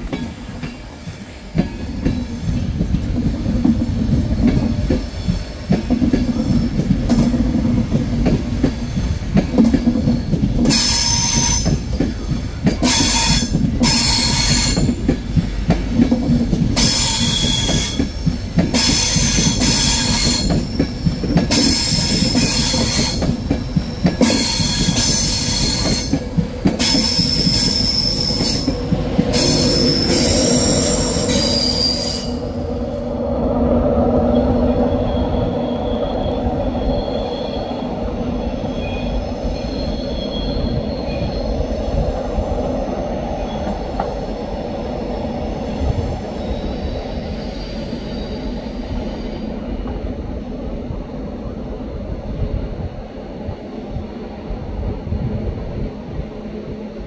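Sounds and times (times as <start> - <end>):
train rumbling past: 0.0 - 57.0
train wheels squealing: 4.0 - 7.5, 8.2 - 15.3, 16.8 - 32.9, 34.1 - 42.6, 43.3 - 44.4, 45.3 - 50.0.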